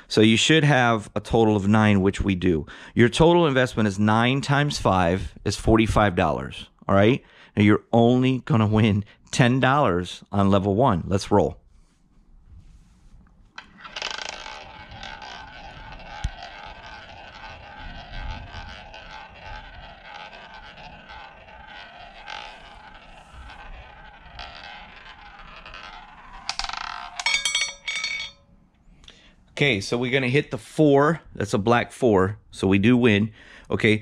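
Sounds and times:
roulette ball rolling: 0:13.1 - 0:28.8
roulette ball clattering: 0:13.5 - 0:28.5.

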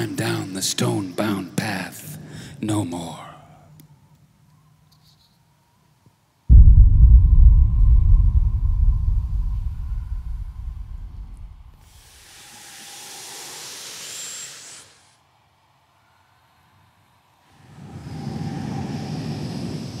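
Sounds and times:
choir low rumble: 0:06.5 - 0:11.8
rough breathy vocal noise: 0:17.5 - 0:20.0.

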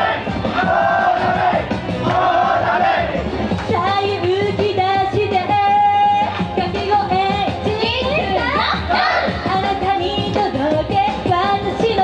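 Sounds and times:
idol pop song: 0:00.0 - 0:12.0.

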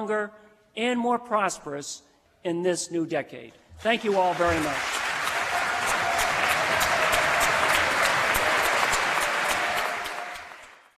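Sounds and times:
audience applauding: 0:03.9 - 0:10.9.

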